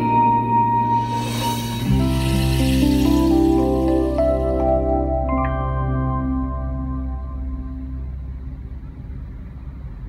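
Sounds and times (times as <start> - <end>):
surrounding traffic: 0.9 - 10.0
car engine rumble: 1.0 - 10.0.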